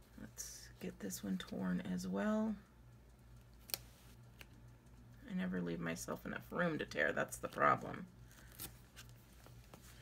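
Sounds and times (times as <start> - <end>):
low steady hum: 0.0 - 10.0
tape tearing ticks: 3.5 - 4.6.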